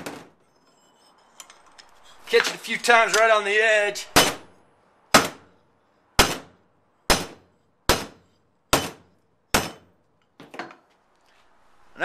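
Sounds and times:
hammer striking steel: 4.0s - 5.6s, 6.2s - 10.0s.

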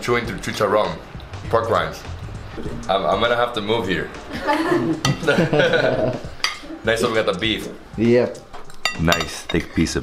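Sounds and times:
cutlery clinking against a plate: 6.4s - 6.7s, 8.4s - 9.9s.

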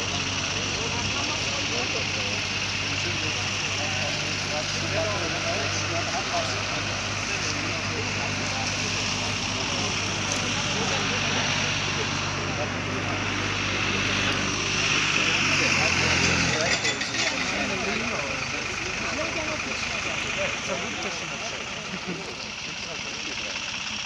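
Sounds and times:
group of people talking: 0.0s - 24.0s
tractor engine droning: 0.0s - 24.0s.

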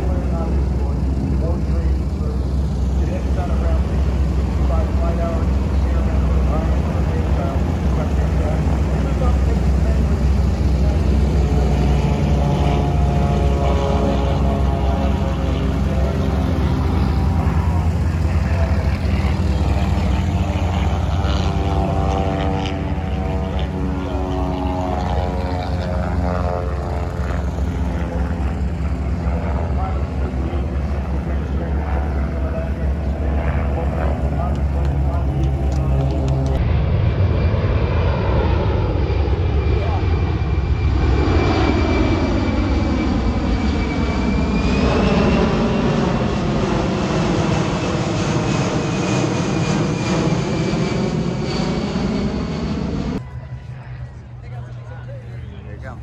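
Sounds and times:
jet passing overhead: 0.0s - 56.0s
propeller planes droning: 0.0s - 56.0s.

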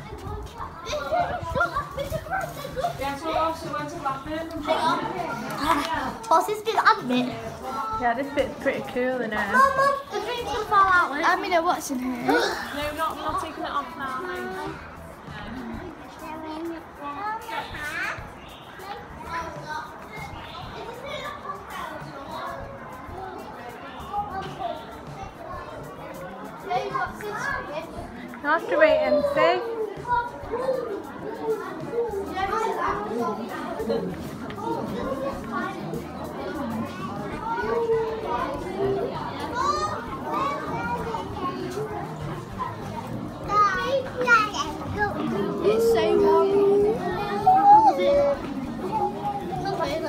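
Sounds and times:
people chattering: 0.0s - 50.0s
child's high-pitched voice: 43.5s - 50.0s.

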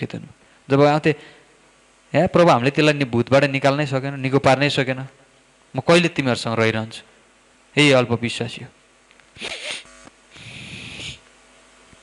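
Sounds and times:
breath into a microphone: 0.4s - 1.6s, 9.4s - 11.2s.

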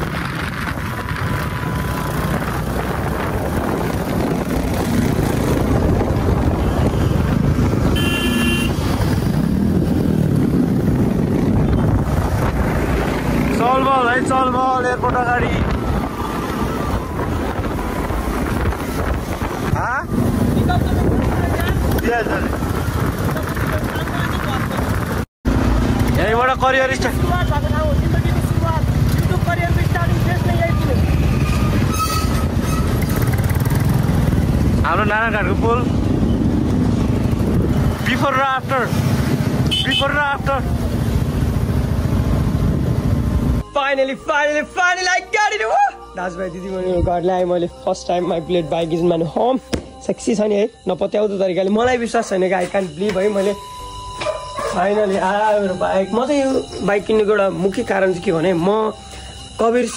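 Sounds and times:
wind buffeting microphone: 0.0s - 8.1s, 8.7s - 13.5s, 14.9s - 25.3s, 31.0s - 38.0s
motorcycle engines rumbling: 0.0s - 45.2s, 46.2s - 59.9s
motorcycle engine running: 32.9s - 38.2s.

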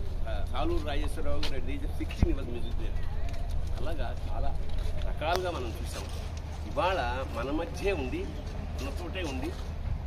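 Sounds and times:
man speaking: 0.2s - 9.6s
steady low rumble: 9.5s - 10.0s.

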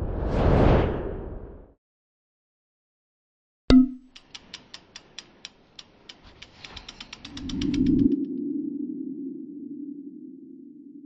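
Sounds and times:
sharp ticks speeding up: 4.1s - 8.2s.

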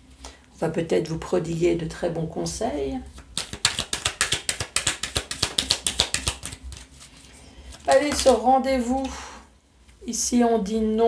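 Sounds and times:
cards shuffled by hand: 3.1s - 8.5s.

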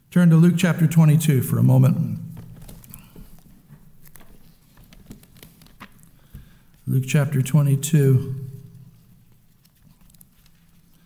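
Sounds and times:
book pages turning: 2.4s - 6.8s, 8.9s - 11.0s.

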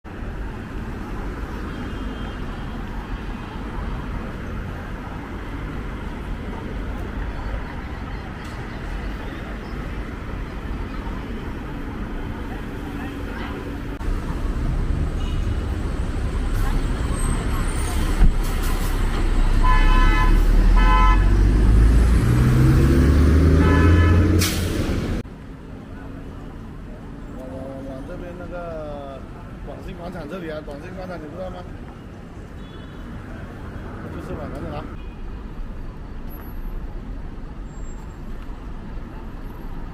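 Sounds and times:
road traffic noise: 0.0s - 39.9s
vehicle engine accelerating: 20.4s - 25.2s.

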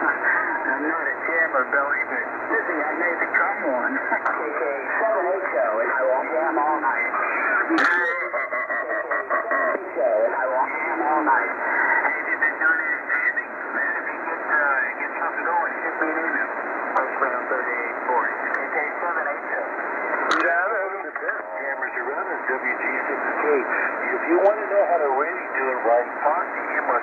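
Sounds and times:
radio static hiss: 0.0s - 27.0s
thin radio voices: 0.0s - 27.0s.

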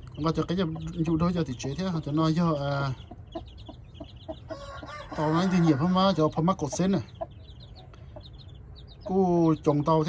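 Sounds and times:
hen clucking: 0.0s - 10.0s.

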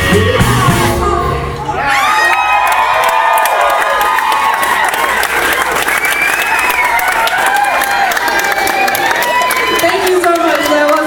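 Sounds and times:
crowd whoops and shouts: 1.6s - 11.0s
audience clapping: 2.1s - 11.0s.

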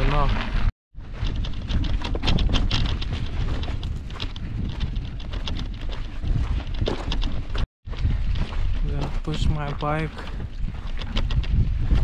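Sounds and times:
footsteps crunching on stony ground: 0.0s - 12.0s
wind buffeting microphone: 0.0s - 12.0s.

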